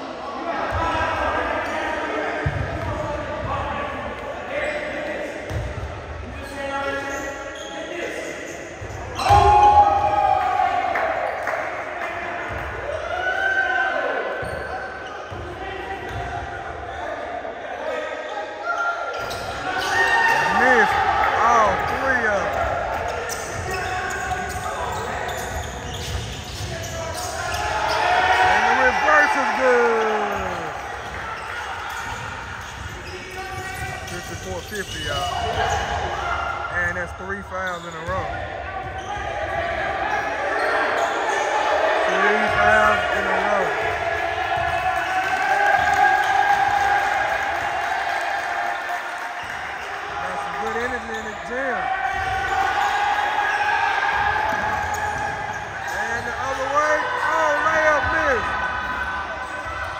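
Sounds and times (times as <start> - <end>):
voices echoing in a hall: 0.0 - 59.9.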